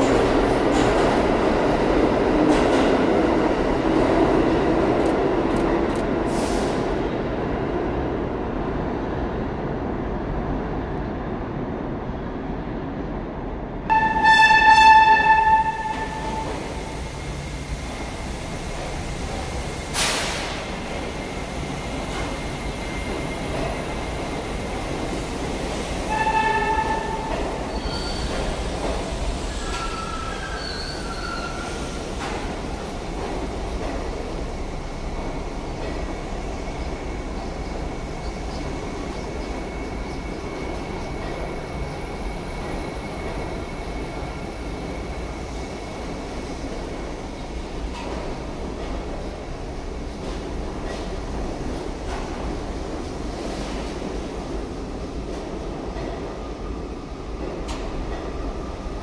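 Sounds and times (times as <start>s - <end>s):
subway train wheel rumble: 0.0s - 59.0s
wavering wheel squeals: 27.7s - 28.5s, 29.5s - 31.8s.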